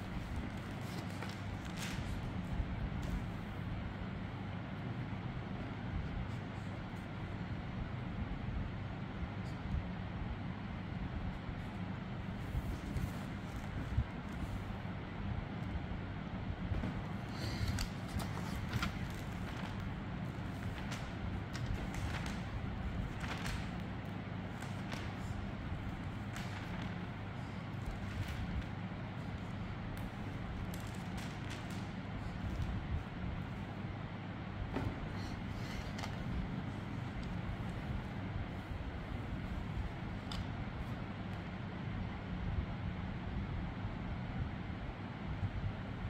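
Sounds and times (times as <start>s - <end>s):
faint rustles and clicks: 0.0s - 3.7s, 11.6s - 15.0s, 16.7s - 33.8s, 34.7s - 41.5s
low hum and hiss: 0.0s - 46.0s.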